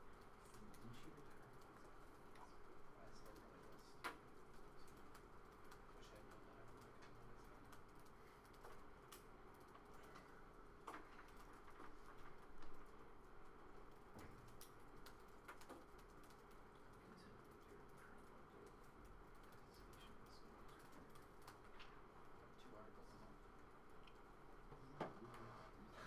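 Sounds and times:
low room hum: 0.0s - 26.0s
typing on laptop keyboard: 0.1s - 21.7s.

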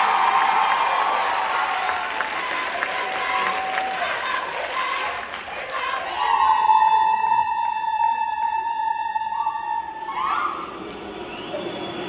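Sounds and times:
crowd noise: 0.0s - 12.0s.

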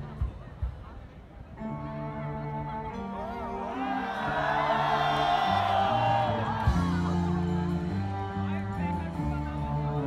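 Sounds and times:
live rock band playing: 1.6s - 10.0s
crowd cheering and whooping: 3.5s - 8.2s.

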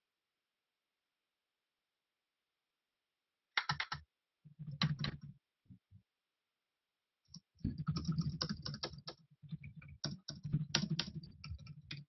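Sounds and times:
keyboard typing clicks: 3.6s - 4.0s, 7.4s - 9.2s.

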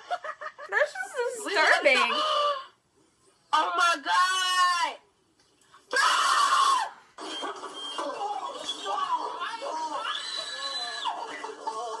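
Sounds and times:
loud harsh cry: 5.9s - 7.0s, 9.4s - 11.2s.

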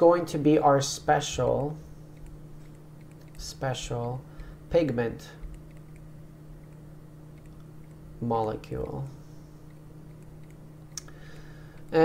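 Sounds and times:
low room tone hum: 0.0s - 12.0s.

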